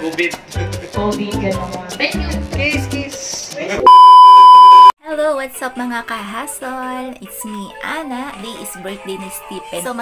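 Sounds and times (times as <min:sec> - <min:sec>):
loud electronic bleep: 0:03.9 - 0:04.9.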